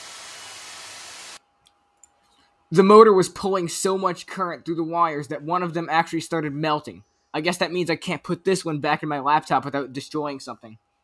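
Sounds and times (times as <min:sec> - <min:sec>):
fan motor rushing hiss: 0:00.0 - 0:01.4.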